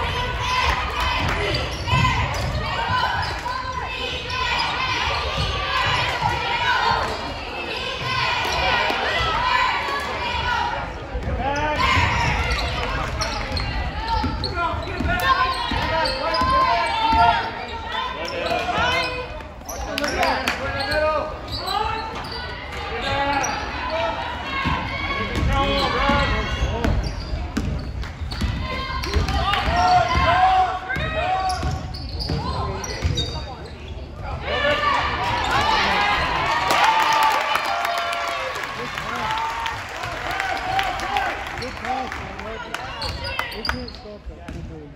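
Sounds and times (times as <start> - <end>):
people talking and shouting: 0.0 - 44.9.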